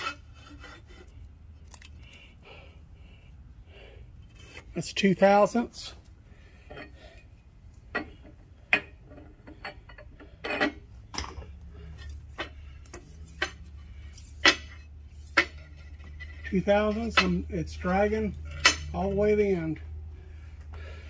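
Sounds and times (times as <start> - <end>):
low steady hum: 0.0 - 21.0.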